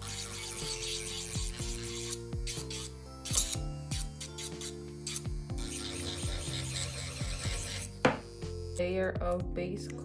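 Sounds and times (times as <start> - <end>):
electric nail drill whirring: 0.0 - 9.2.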